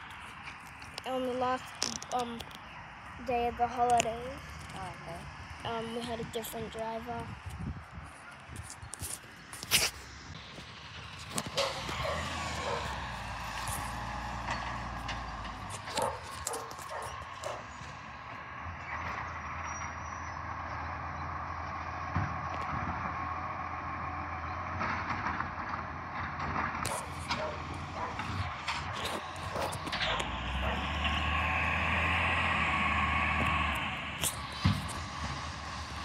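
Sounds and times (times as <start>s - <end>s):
distant diesel truck engine: 0.0s - 36.0s.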